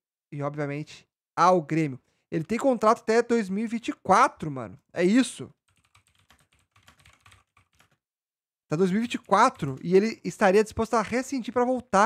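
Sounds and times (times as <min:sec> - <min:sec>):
typing on computer keyboard: 0:05.7 - 0:08.0, 0:09.0 - 0:09.9.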